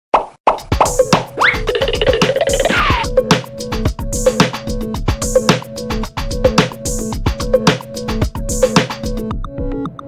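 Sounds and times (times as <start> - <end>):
light music: 0.6 - 10.0.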